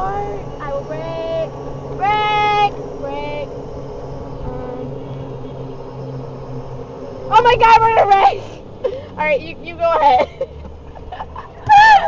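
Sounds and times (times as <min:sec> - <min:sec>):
golf cart humming on gravel: 0:00.0 - 0:12.0.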